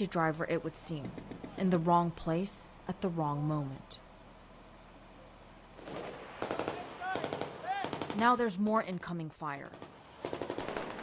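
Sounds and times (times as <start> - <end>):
background noise: 0.0 - 11.0
automatic gunfire: 5.8 - 8.3, 9.7 - 11.0.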